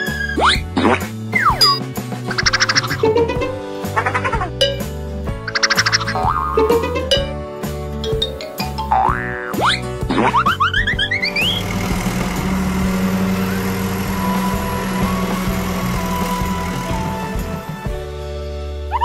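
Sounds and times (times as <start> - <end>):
cartoon music: 1.4 - 7.4
boing sound effects: 8.9 - 10.6
steady machine hum: 11.3 - 18.0.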